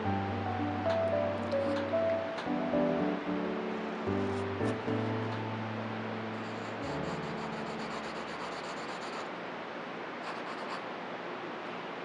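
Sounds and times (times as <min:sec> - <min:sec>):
pencil scratching on paper: 0:06.4 - 0:09.3, 0:10.2 - 0:10.8.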